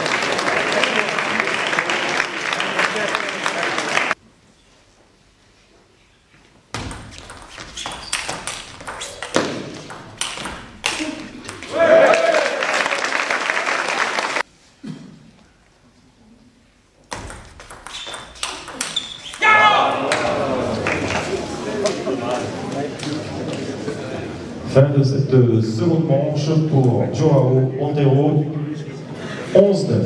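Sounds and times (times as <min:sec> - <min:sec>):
applause: 0:00.0 - 0:04.2, 0:11.7 - 0:14.4, 0:20.1 - 0:21.5
table tennis ball clicking: 0:07.2 - 0:11.7, 0:17.1 - 0:19.4
people shouting: 0:11.6 - 0:12.6, 0:19.3 - 0:20.8.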